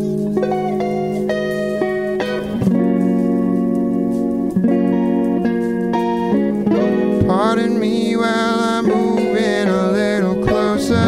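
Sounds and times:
electric guitars: 0.0s - 11.0s
bass guitar: 10.4s - 11.0s.

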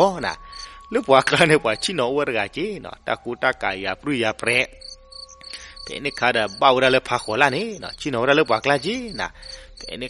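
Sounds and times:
crickets chirping: 0.0s - 2.6s, 4.5s - 10.0s
faint steady tone: 0.0s - 2.8s, 4.5s - 10.0s
man narrating: 0.0s - 4.8s, 5.5s - 10.0s.

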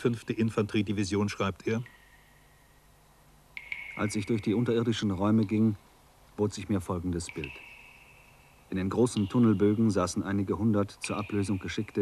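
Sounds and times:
steady high-pitched tone: 0.0s - 12.0s.

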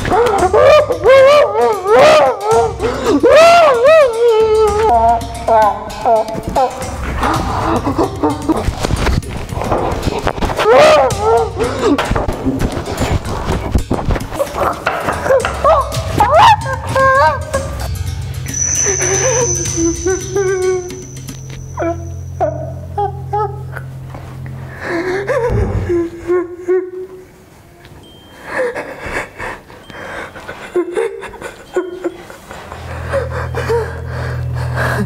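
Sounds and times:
man moaning and gasping in pain: 0.0s - 8.5s, 11.0s - 12.1s
high ringing tone: 17.9s - 23.0s, 28.0s - 28.4s
low droning film score: 31.8s - 35.0s.

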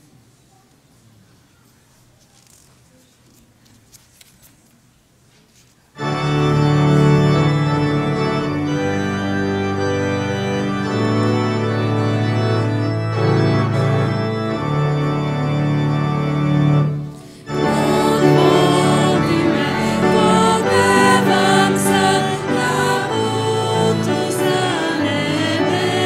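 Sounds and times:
church organ chords: 6.0s - 26.0s.

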